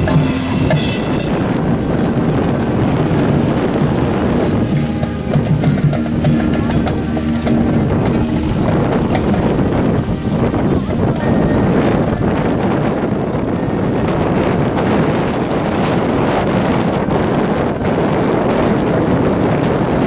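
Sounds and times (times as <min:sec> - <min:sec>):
marching band playing: 0:00.0 - 0:12.9
brass low sustained notes: 0:00.0 - 0:16.4
wind noise on microphone: 0:00.0 - 0:20.0.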